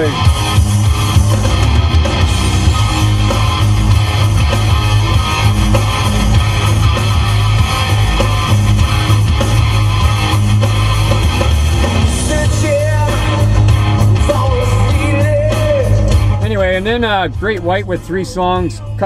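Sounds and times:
hard rock song: 0.0s - 19.0s.

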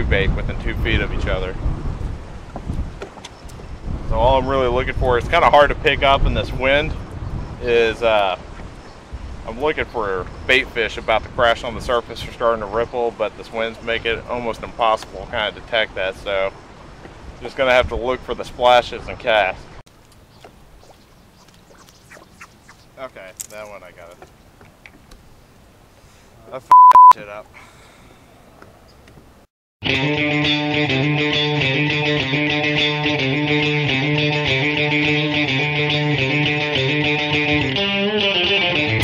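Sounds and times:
wind buffeting microphone: 0.0s - 12.8s
faint wind: 0.0s - 29.5s
water noise: 19.9s - 25.1s
faint bird calls: 20.2s - 23.0s.

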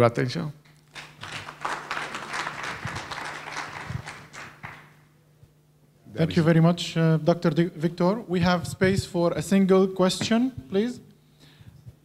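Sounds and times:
audience applauding: 0.9s - 5.0s.

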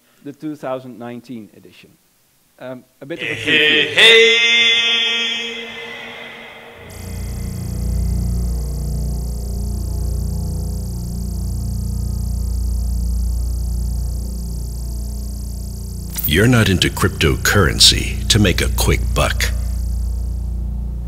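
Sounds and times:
deep low drone: 6.3s - 21.0s.

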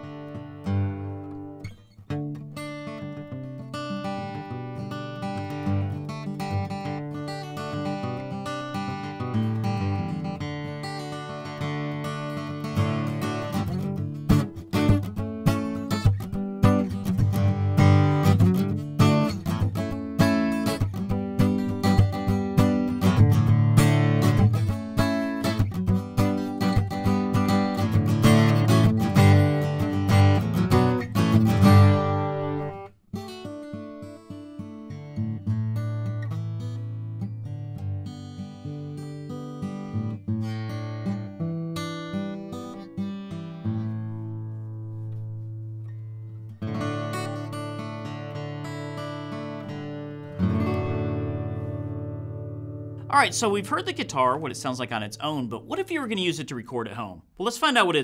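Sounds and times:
acoustic guitar picked notes: 0.0s - 58.0s
acoustic guitar strummed chords: 0.0s - 58.0s.

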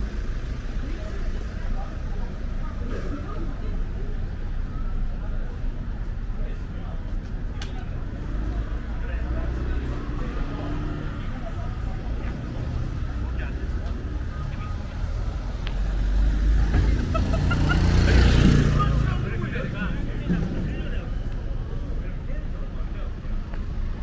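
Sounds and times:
low rumble of traffic: 0.0s - 24.0s
people talking faintly: 0.0s - 24.0s.

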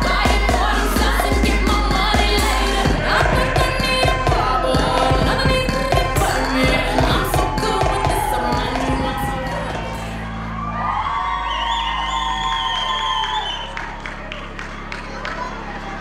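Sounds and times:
hip-hop music over sound system: 0.0s - 10.5s
audience cheering and whooping: 0.0s - 16.0s.

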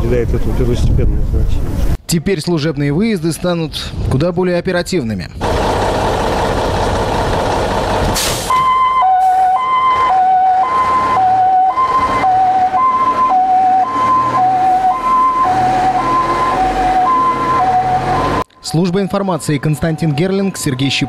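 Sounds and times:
truck engine running: 5.4s - 8.7s
short hiss: 8.2s - 8.6s
two-tone siren: 8.5s - 18.4s, 19.1s - 21.0s.

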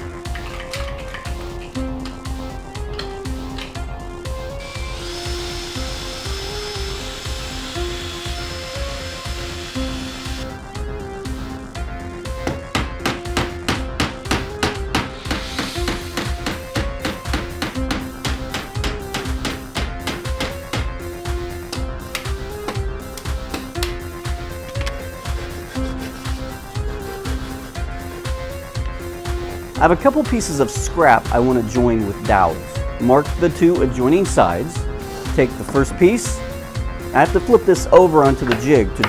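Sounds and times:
background music: 0.0s - 39.0s
cordless drill boring wood: 4.6s - 10.4s, 15.2s - 16.1s.

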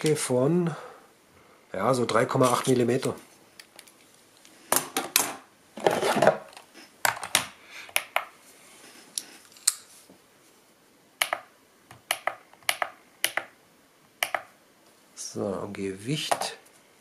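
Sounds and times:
scale buttons clicking: 11.2s - 13.5s.

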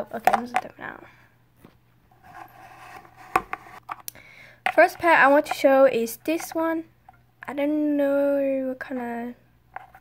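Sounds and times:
plastic figurines handled on shelf: 1.6s - 7.6s, 9.7s - 10.0s.

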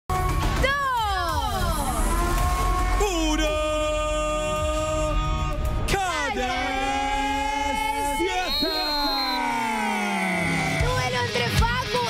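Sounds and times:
music with pulsing bass beat: 0.1s - 6.6s.

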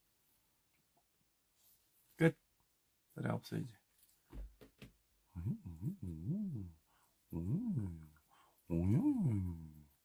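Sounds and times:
wordless voiced moans: 5.3s - 9.9s.

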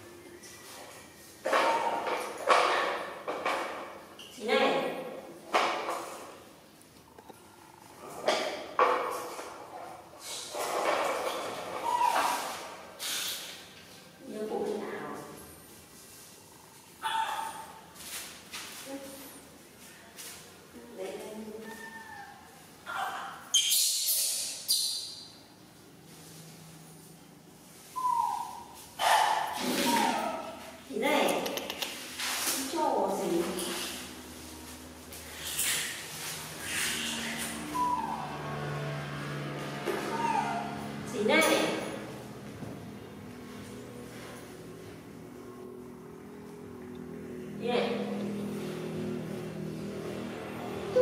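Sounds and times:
monkey falling coo: 28.0s - 28.8s, 29.6s - 30.5s
baby monkeys crying shrilly: 36.6s - 38.5s, 40.1s - 40.8s.

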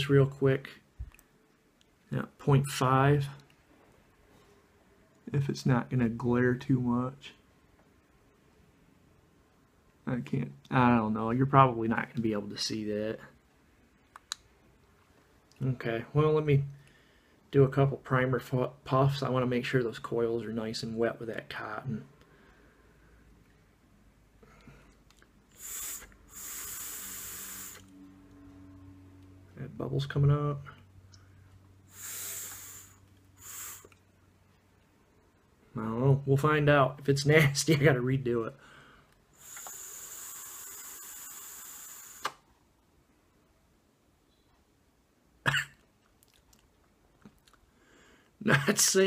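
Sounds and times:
air hissing with high whistle: 25.5s - 28.0s, 31.9s - 34.0s, 39.3s - 42.4s
cough-like burst: 45.4s - 45.8s.

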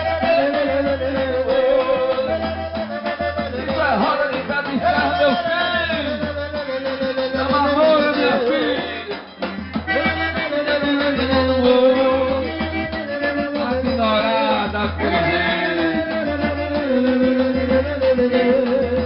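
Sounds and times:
accordion melody: 0.0s - 19.0s
live band playing: 0.0s - 19.0s.

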